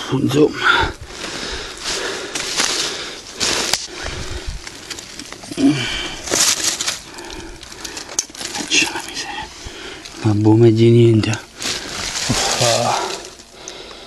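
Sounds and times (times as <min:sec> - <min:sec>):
crunching in dry leaves: 0:01.0 - 0:13.9.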